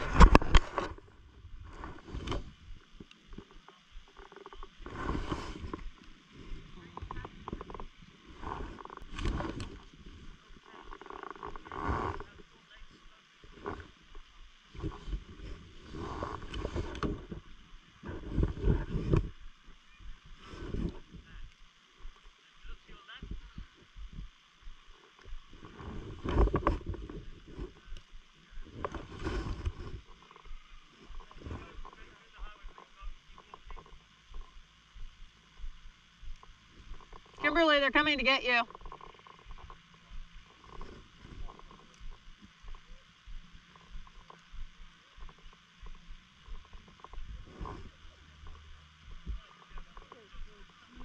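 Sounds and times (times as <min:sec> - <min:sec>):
footsteps crunching on snow: 0:23.3 - 0:37.0.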